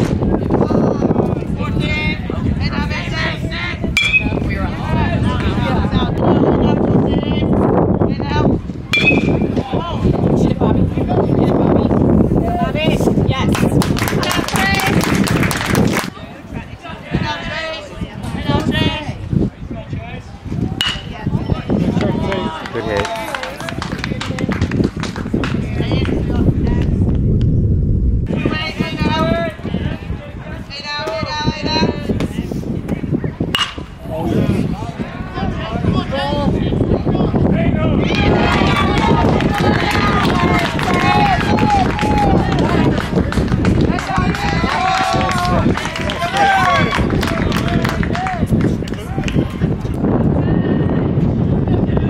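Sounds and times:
people shouting and cheering: 20.6 - 24.5, 28.3 - 32.1, 33.6 - 52.0
short knocks and claps: 22.0 - 26.2.

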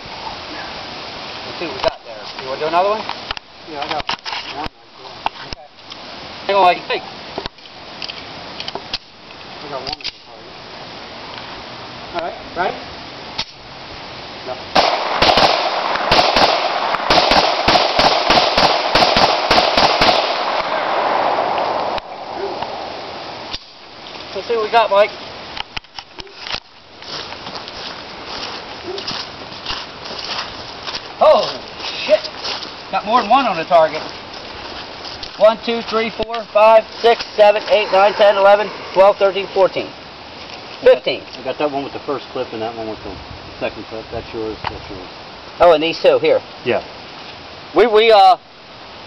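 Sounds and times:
footsteps through grass: 25.0 - 41.4.

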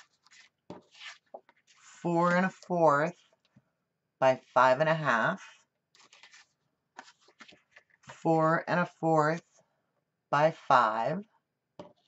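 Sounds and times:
paper sheets scraping: 0.0 - 3.4, 5.4 - 8.2.

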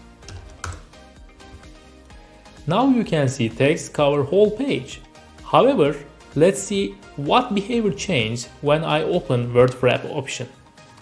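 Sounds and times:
quiet background music: 0.0 - 11.0
computer keyboard keystrokes: 0.2 - 0.9.

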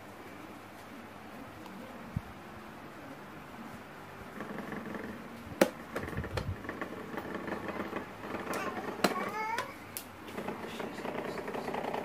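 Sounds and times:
electric fan motor hum: 0.0 - 12.0.

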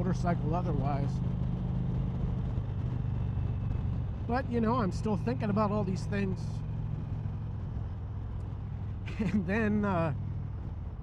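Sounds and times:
motorcycle engine cruising: 0.0 - 11.0
road noise: 0.0 - 11.0
wind noise: 1.2 - 4.3.

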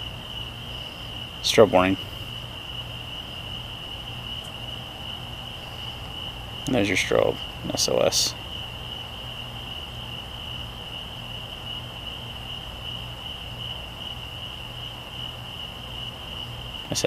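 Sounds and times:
crickets trilling: 0.0 - 17.0
low steady hum: 0.0 - 17.0.

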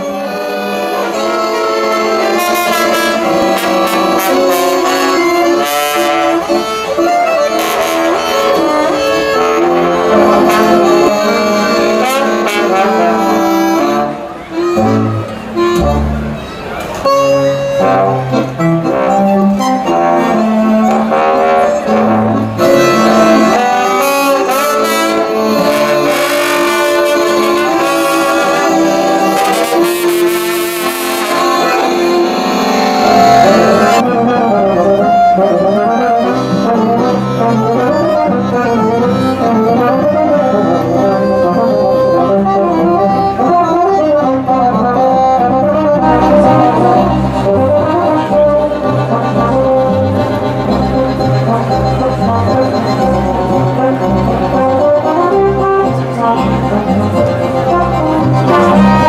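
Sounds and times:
accordion: 0.0 - 59.0
cello: 0.0 - 59.0
low brass line: 0.0 - 59.0
trombone melody: 0.0 - 59.0.

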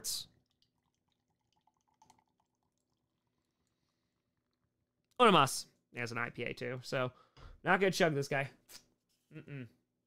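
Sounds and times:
beer pouring into a glass: 0.0 - 5.1.

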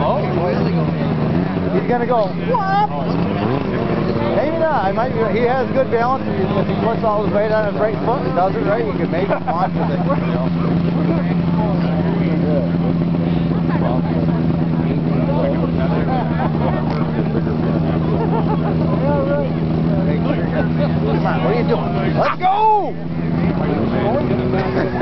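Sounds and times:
snowmobile engine running: 0.0 - 25.0
voices: 0.0 - 25.0.

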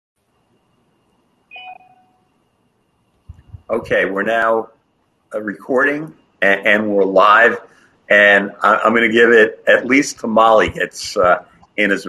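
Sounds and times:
faint room noise: 0.2 - 12.0
electronic notification chime: 1.5 - 2.2.

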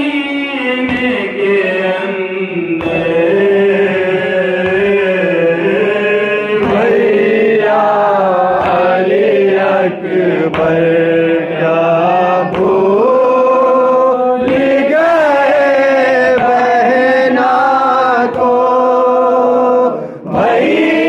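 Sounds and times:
men chanting a lament: 0.0 - 21.0.

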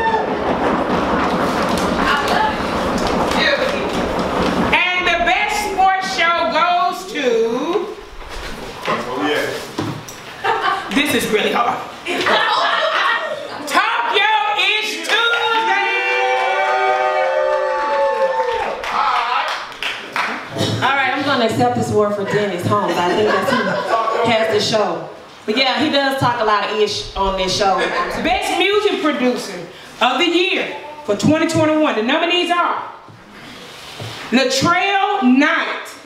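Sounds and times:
voices cheering: 0.0 - 0.8, 12.2 - 20.5
people clapping: 0.0 - 4.7, 14.3 - 20.8
hands drumming on tables: 0.0 - 6.0.

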